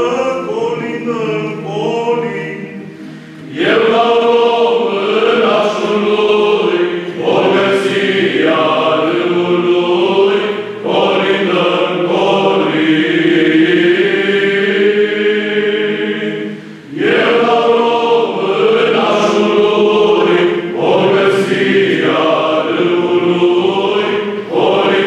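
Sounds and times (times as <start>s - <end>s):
male choir singing unaccompanied: 0.0s - 25.0s.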